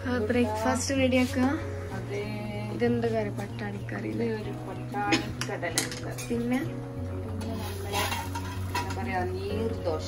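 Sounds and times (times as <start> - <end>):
metal spatula scraping pan: 7.4 - 9.3.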